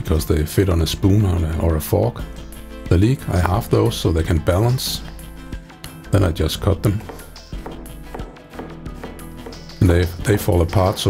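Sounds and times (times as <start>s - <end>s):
background music: 0.0s - 11.0s
knife tapping cutting board: 6.8s - 10.0s.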